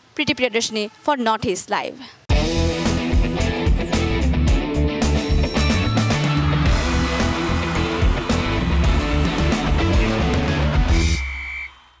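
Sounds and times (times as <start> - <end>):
rock theme music with guitar: 2.3 - 11.2.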